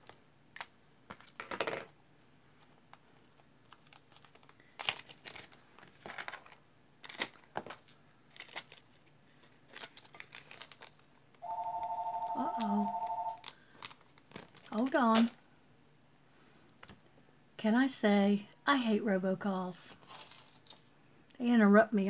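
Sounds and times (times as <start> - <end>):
plastic bag crinkling: 3.2 - 11.1, 13.4 - 15.4, 20.0 - 20.9
telephone ringing two-tone: 11.4 - 13.4.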